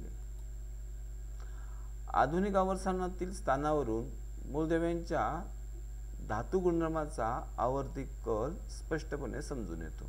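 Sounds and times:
faint high-pitched whine: 0.0 - 10.0
low electrical hum: 0.0 - 10.0.

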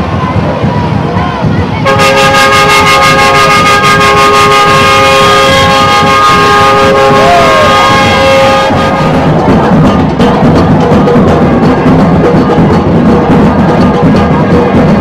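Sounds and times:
crowd noise: 0.0 - 15.0
two-tone horn blast: 1.8 - 9.4.

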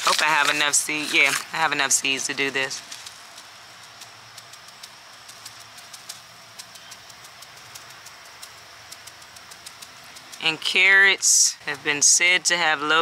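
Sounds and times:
low outdoor hiss: 0.0 - 13.0.

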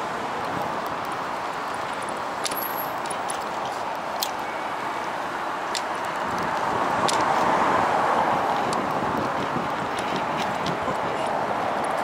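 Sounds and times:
road traffic hiss: 0.0 - 12.0.

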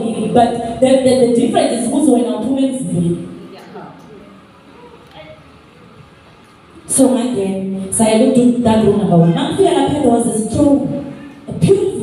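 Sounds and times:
hall room tone: 0.0 - 12.0.

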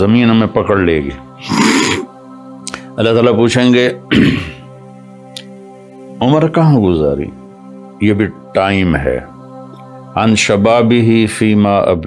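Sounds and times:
background music of held notes: 0.0 - 12.0
man clearing his throat: 4.1 - 4.6.

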